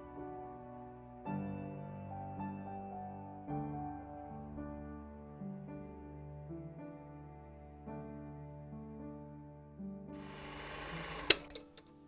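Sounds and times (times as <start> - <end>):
film projector rattling: 10.2 - 11.8
small clicks: 10.2 - 12.0
loud switch click: 11.2 - 11.9.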